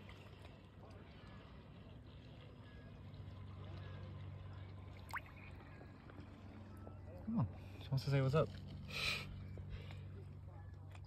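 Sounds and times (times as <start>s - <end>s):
water lapping and trickling: 0.0s - 11.0s.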